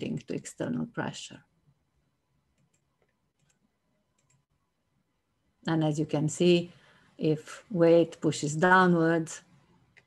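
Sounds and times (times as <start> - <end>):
woman speaking: 0.0 - 1.5, 5.6 - 9.5
computer mouse clicks: 2.5 - 4.5.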